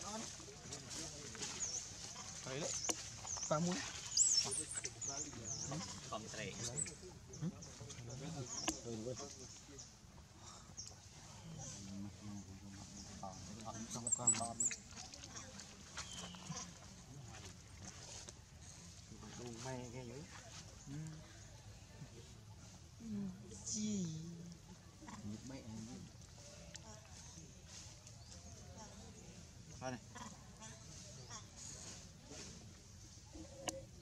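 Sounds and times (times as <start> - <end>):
faint background voices: 0.0 - 34.0.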